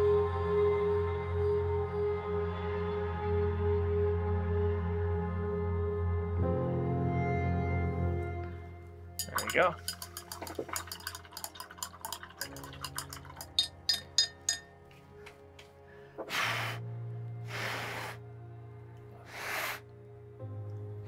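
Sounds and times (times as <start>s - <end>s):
background music with held notes: 0.0s - 21.0s
short puffs of breath: 16.0s - 16.8s, 17.5s - 18.2s, 19.2s - 19.8s.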